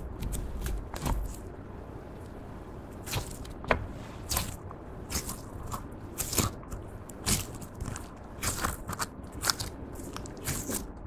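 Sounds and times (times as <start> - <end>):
slime popping and crackling: 4.2 - 11.0.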